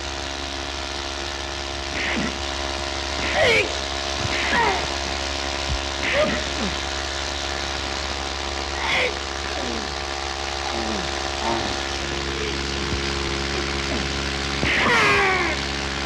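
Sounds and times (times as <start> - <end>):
propeller plane engine drone: 0.0 - 16.0.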